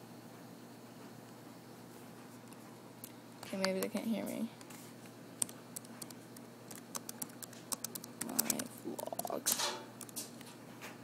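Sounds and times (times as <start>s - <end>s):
laptop keys typing: 5.4s - 10.5s.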